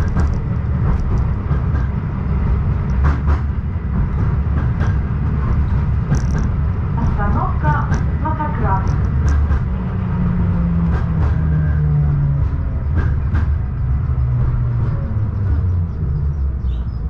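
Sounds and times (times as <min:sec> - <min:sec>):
tram motors and wheels humming: 0:00.0 - 0:17.0
sharp clicks: 0:07.3 - 0:09.7.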